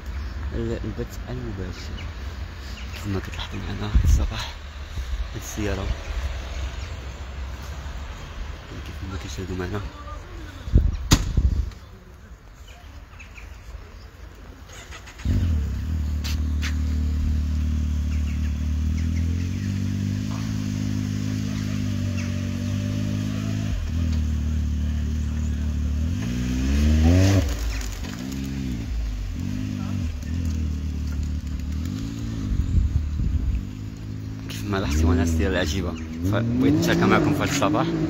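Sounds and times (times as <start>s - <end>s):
vehicle engine idling and revving: 14.4s - 38.0s.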